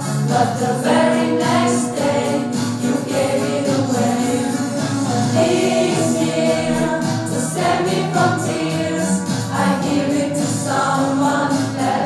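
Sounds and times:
choir singing: 0.0s - 12.0s.

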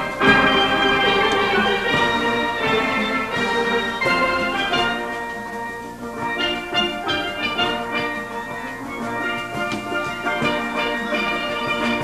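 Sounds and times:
steel pan band playing: 0.0s - 12.0s.

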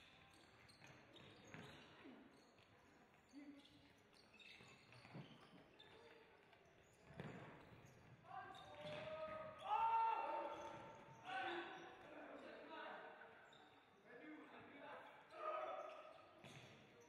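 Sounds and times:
voices shouting in a sports hall: 7.1s - 17.0s.

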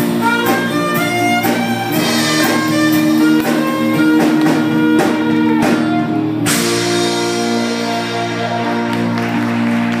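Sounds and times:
bass guitar: 0.0s - 10.0s
electric guitar: 0.0s - 10.0s
saxophone: 0.0s - 10.0s.

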